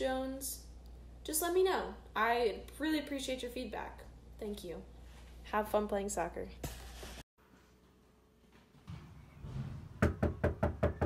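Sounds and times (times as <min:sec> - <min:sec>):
rapid knocking on door: 0:10.0 - 0:11.0.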